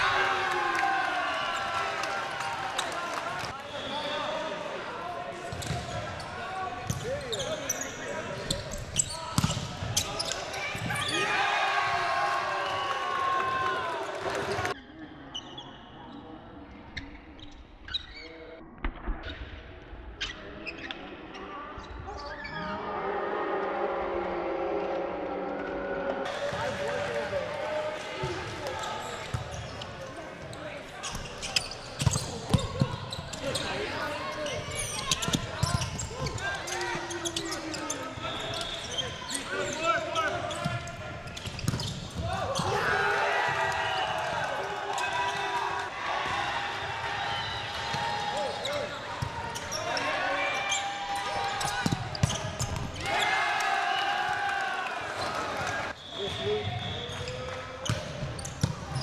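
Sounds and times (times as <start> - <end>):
players shouting: 9.4 - 14.8, 41.8 - 56.4.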